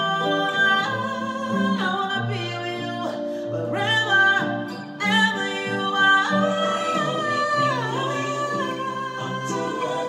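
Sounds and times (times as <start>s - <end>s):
strummed acoustic guitar: 0.0s - 10.0s
woman singing: 0.0s - 10.0s.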